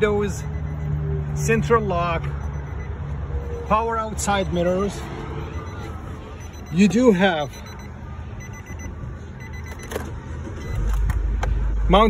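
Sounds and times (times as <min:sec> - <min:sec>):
car engine starting and idling: 0:04.9 - 0:12.0.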